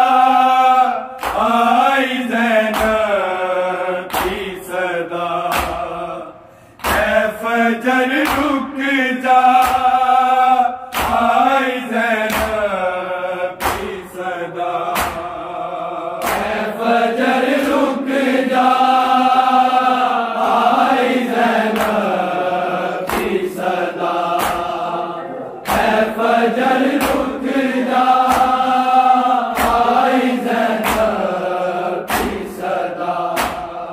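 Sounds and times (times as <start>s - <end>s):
men chanting a lament: 0.0s - 33.9s
hands slapping bare chests: 1.2s - 1.6s, 2.7s - 3.1s, 4.1s - 4.6s, 5.4s - 6.1s, 6.8s - 7.3s, 8.1s - 8.6s, 9.5s - 10.0s, 10.9s - 11.4s, 12.2s - 12.7s, 13.6s - 14.1s, 14.8s - 15.4s, 16.2s - 16.6s, 21.7s - 22.2s, 23.0s - 23.5s, 24.2s - 24.8s, 25.6s - 26.1s, 26.8s - 28.7s, 29.5s - 31.4s, 32.0s - 33.8s.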